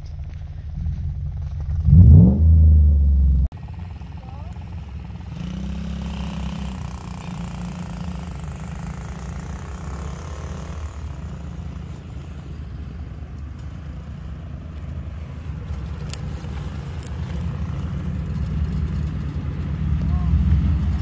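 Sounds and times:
truck engine running at low speed: 0.0 - 21.0
pickup engine revving: 0.6 - 3.5.

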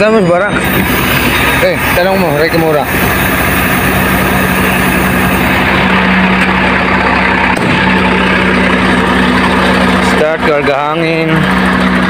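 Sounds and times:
truck diesel engine idling: 0.0 - 12.0.

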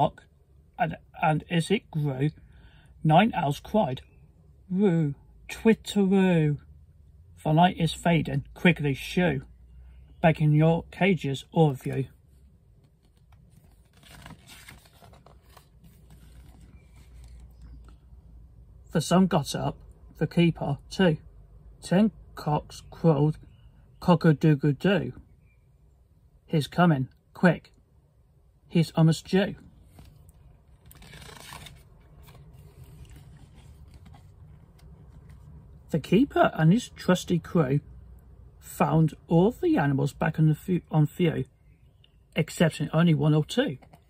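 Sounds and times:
paper rustling and crinkling: 12.8 - 17.9, 29.8 - 35.5
book page turning: 12.8 - 18.0, 29.8 - 35.7
paper rubbing and ticks: 30.8 - 34.4.

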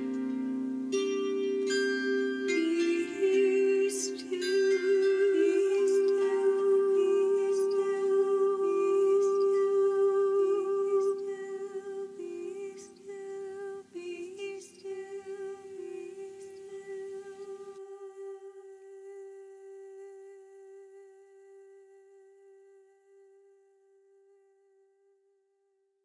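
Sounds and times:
long held tone: 0.0 - 13.6
person humming a gentle song: 0.0 - 23.4.

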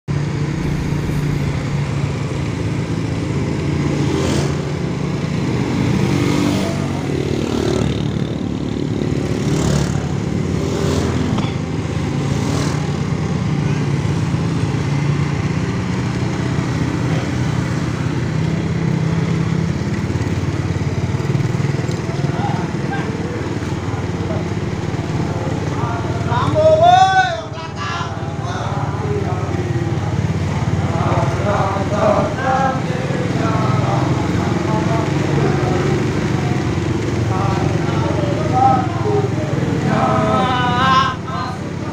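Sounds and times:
motorcycle and vehicle engines: 0.1 - 41.9
loud drawn-out voice call: 25.4 - 33.1, 33.7 - 41.9.

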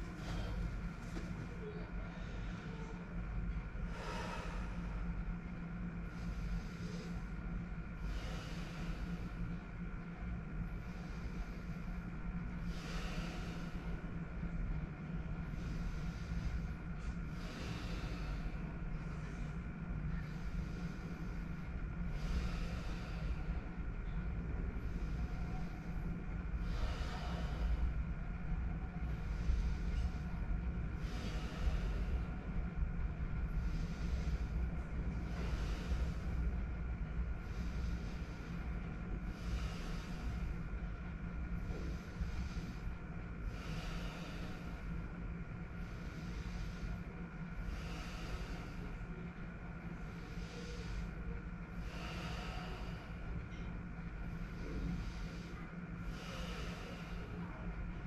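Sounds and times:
deep rhythmic breathing: 0.0 - 58.0
steady low hum: 0.0 - 58.0.

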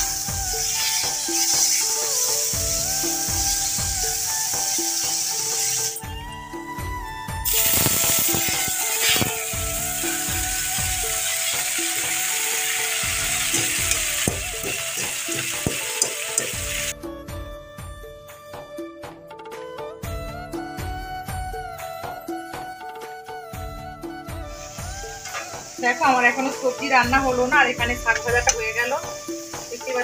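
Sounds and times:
oil sizzling in a frying pan: 0.0 - 6.1, 7.4 - 17.0, 24.5 - 30.0
background music: 0.0 - 30.0.

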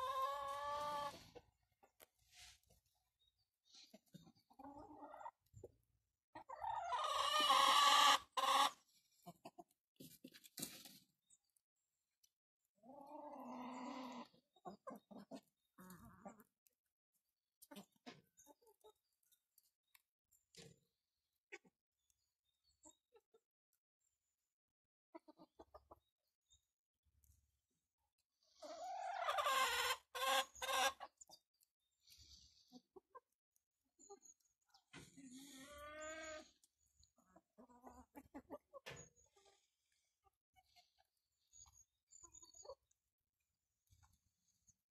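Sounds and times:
chicken squawks: 0.0 - 1.4, 6.4 - 8.8, 12.9 - 16.4, 28.6 - 31.1
chickens clucking: 0.0 - 11.4, 12.7 - 16.6, 17.6 - 20.8, 21.4 - 23.5, 25.1 - 26.3, 28.1 - 43.0.

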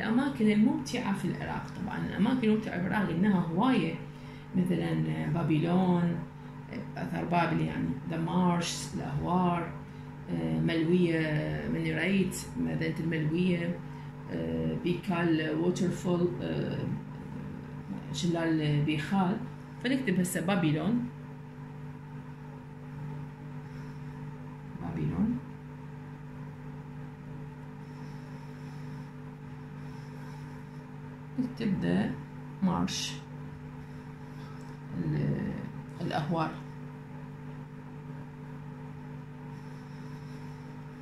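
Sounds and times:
steady low hum: 0.0 - 41.0.

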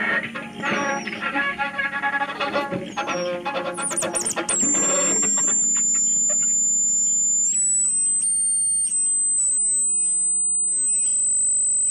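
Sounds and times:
high-pitched electronic whistle: 0.6 - 1.2, 2.9 - 11.9.

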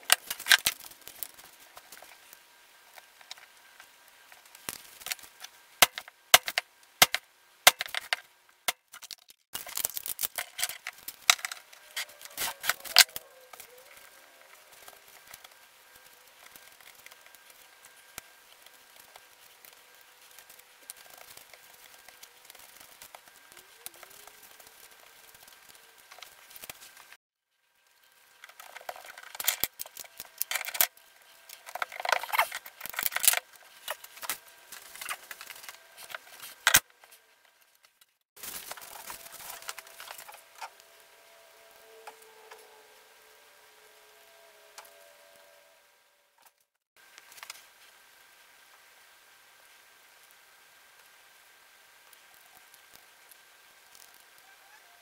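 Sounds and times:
parts and bolts clicking: 5.0 - 13.6, 28.4 - 30.9.

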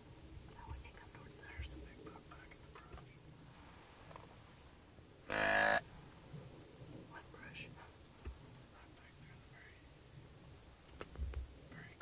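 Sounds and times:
faint whispering: 0.5 - 3.8, 7.0 - 10.0, 11.7 - 12.0
loud deer-like bleat: 5.3 - 5.9.

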